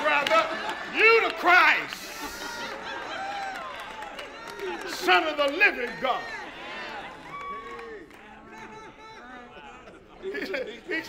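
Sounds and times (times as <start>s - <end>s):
quiet voices in hall: 0.0s - 11.0s.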